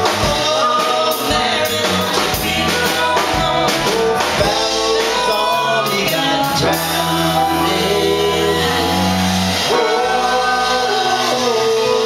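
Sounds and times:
drum kit: 0.0 - 12.0
electric guitars: 0.0 - 12.0
male lead vocal: 0.0 - 12.0.

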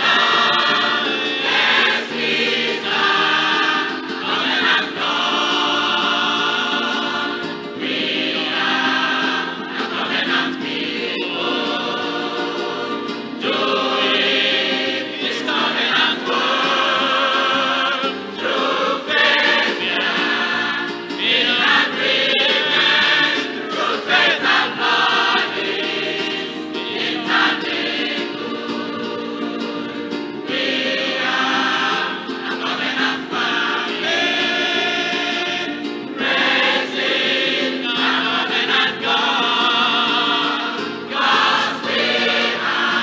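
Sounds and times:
church choir singing gospel: 0.0 - 43.0.

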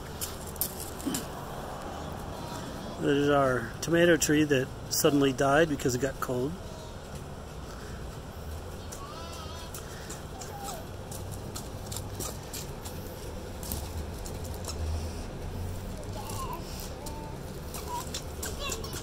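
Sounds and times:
footsteps on gravel: 0.0 - 2.6, 7.1 - 19.0
toddler babbling: 2.0 - 3.0, 8.8 - 9.8, 10.4 - 10.9, 16.0 - 19.0.

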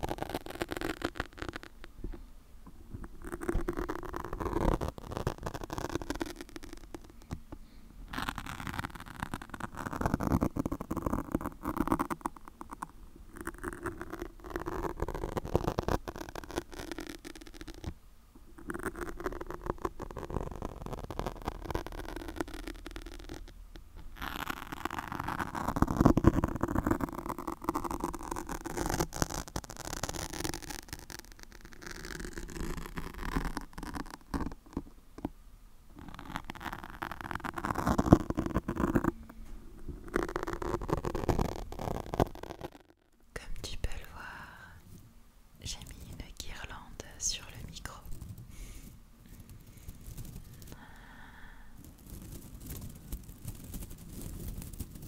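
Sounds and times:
fingernails scratching foam windscreen: 0.0 - 1.8, 3.1 - 7.3, 8.1 - 17.9, 18.6 - 23.4, 24.1 - 35.3, 36.0 - 39.1, 40.0 - 42.9
tinsel garland crinkling: 45.6 - 55.0.

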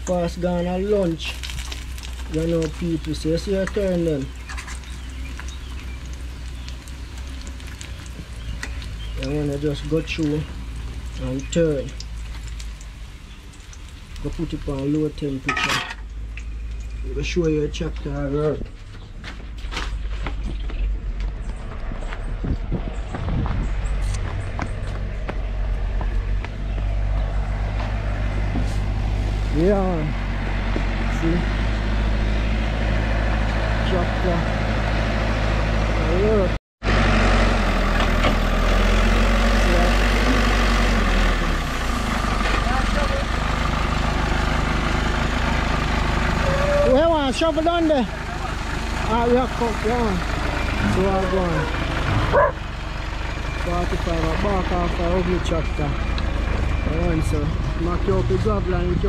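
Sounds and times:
diesel engine running: 0.0 - 59.0
short voices: 46.3 - 47.2.

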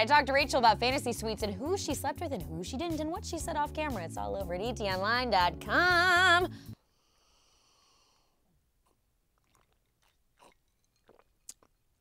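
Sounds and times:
person gulping and swallowing: 8.8 - 12.0.

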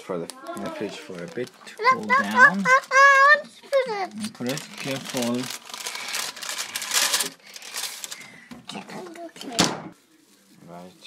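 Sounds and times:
baking paper crinkling: 0.0 - 11.0.

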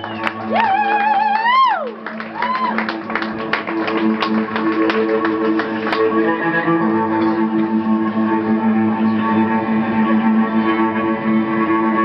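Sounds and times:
held cello notes: 2.2 - 12.0
plucked string notes: 3.4 - 12.0.

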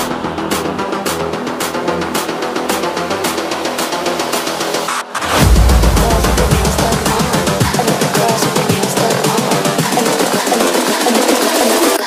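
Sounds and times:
electronic dance track: 0.0 - 12.0.

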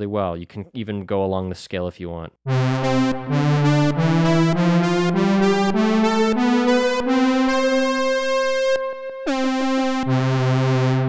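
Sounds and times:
analogue synthesizer notes: 2.5 - 11.0.

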